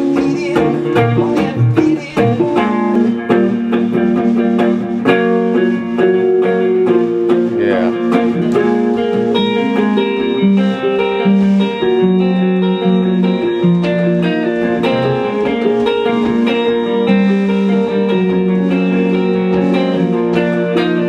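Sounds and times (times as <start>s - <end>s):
electric guitar strumming chords: 0.0s - 21.0s
keyboard playing held notes: 0.0s - 21.0s.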